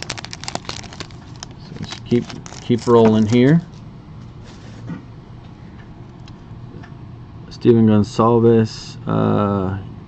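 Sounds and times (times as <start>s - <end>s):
wrapper and cards rustling: 0.0s - 3.8s
low steady background hum: 0.0s - 10.0s.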